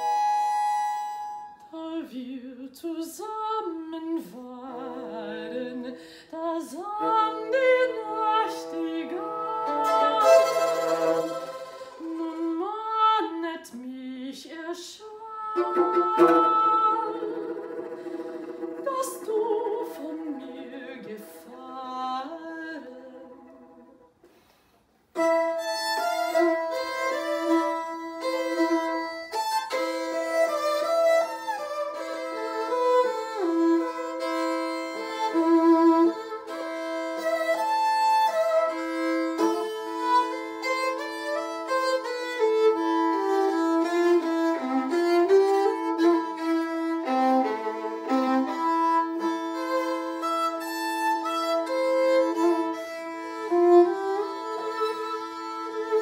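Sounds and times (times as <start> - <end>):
violin and viola duet: 0.0 - 2.3, 3.4 - 13.8, 15.1 - 24.2, 25.1 - 56.0.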